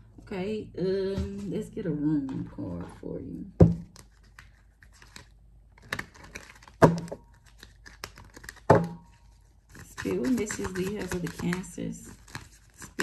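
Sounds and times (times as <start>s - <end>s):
cards being shuffled: 3.8s - 13.0s.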